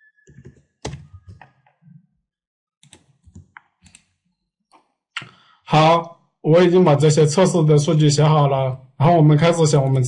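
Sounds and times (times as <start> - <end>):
computer keyboard typing: 0.3 - 1.6, 2.8 - 4.2.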